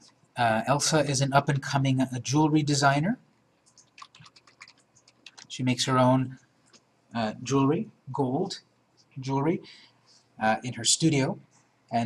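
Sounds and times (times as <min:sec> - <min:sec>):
keyboard typing clicks: 0:03.7 - 0:05.5.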